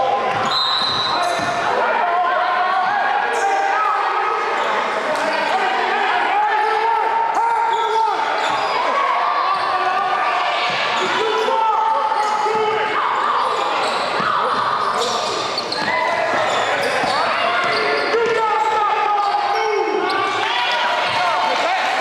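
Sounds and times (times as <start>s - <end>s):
echoing voices: 0.0s - 22.0s
sneakers squeaking on wooden floor: 0.2s - 1.6s, 7.7s - 9.8s, 10.6s - 11.5s, 12.1s - 21.3s.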